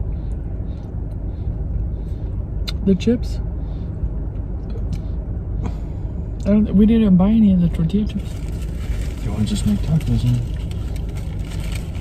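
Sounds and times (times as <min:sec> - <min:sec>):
car engine idling: 0:00.0 - 0:12.0.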